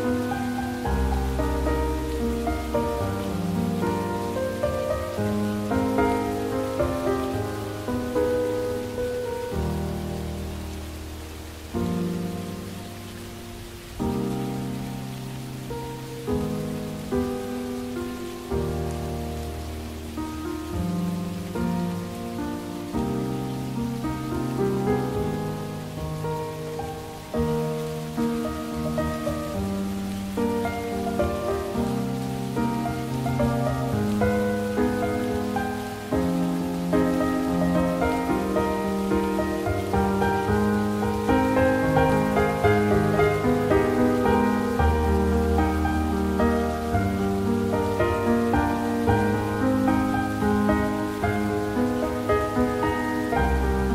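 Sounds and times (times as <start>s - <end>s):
slow music with sustained chords: 0.0s - 53.9s
steady rain: 0.0s - 53.9s.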